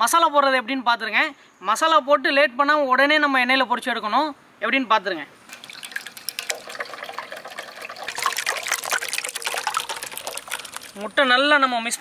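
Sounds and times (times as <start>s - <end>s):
wet squelching of hands mixing: 5.5s - 11.2s.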